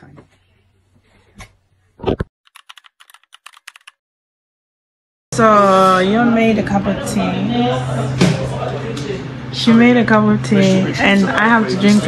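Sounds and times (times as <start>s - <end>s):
keyboard typing clicks: 2.5s - 4.0s.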